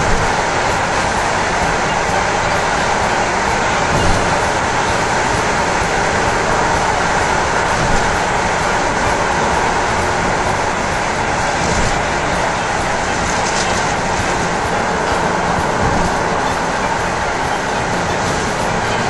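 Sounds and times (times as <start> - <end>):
car road and tyre noise: 0.0 - 19.0.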